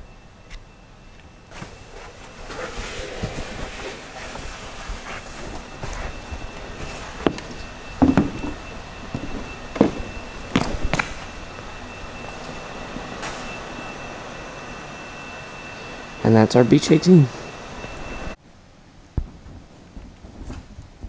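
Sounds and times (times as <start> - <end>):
faint steady high tone: 0.0 - 18.4
footsteps on concrete floor: 3.2 - 13.5
knocks and thumps: 8.0 - 11.1.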